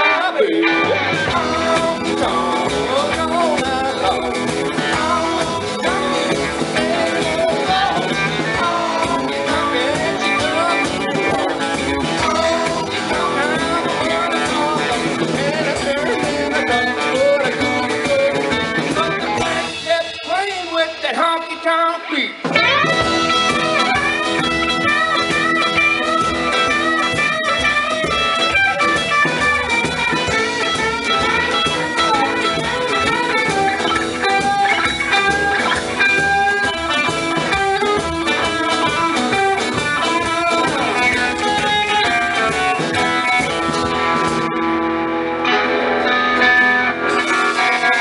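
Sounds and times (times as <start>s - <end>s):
drum kit: 0.0s - 48.0s
electric guitar lead line: 0.0s - 48.0s
strummed acoustic guitar: 0.0s - 48.0s
upright bass: 0.0s - 48.0s.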